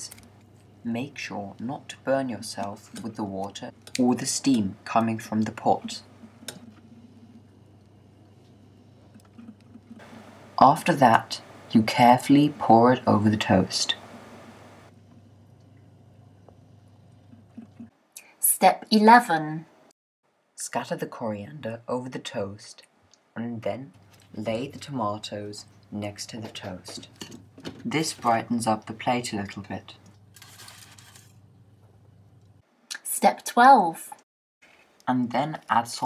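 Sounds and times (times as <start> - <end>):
low steady hum: 0.0 - 18.3, 20.8 - 32.6.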